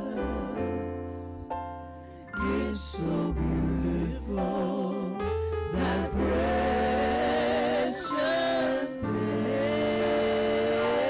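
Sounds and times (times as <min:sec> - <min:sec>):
voices singing gospel: 0:00.0 - 0:01.2, 0:02.4 - 0:11.0.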